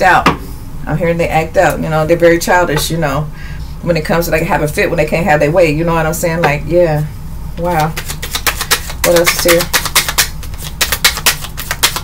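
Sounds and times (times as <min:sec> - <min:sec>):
cards being shuffled: 0:07.8 - 0:12.0.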